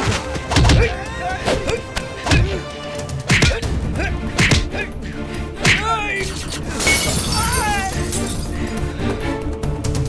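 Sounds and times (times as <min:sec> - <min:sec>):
background music: 0:00.0 - 0:10.0
men shouting: 0:00.8 - 0:06.4, 0:07.3 - 0:08.2
punch impacts: 0:04.4 - 0:04.7
glass shattering: 0:06.7 - 0:08.6.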